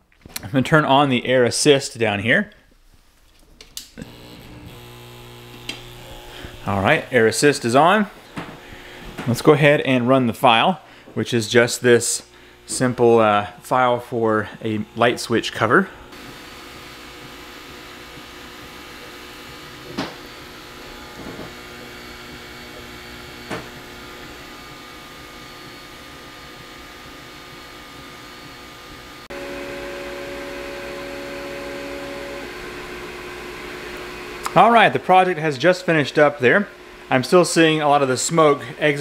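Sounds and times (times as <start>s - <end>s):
laser cutter pump and fan hum: 4.0s - 10.6s, 11.2s - 39.0s.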